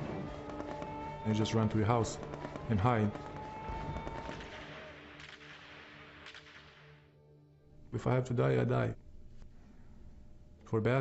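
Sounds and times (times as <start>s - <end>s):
rumbling crackling shelling din: 0.0s - 7.0s
sharp gunfire cracks: 2.2s - 7.1s.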